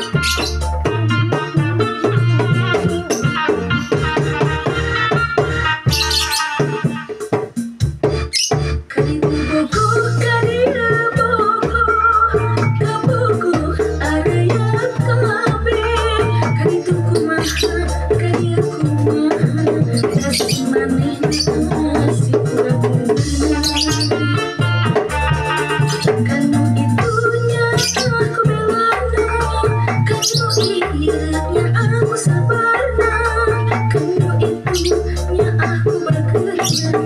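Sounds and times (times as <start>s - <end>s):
person singing wavering melody: 0.0s - 4.2s, 9.0s - 24.7s, 25.6s - 37.0s
bass line: 0.0s - 37.0s
hand drums driving beat: 0.0s - 37.0s.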